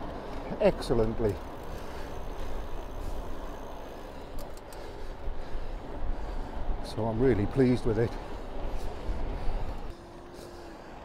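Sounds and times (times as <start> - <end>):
bike tyres rolling on tarmac: 0.0 - 11.0
wind rumble on microphone: 8.2 - 10.0.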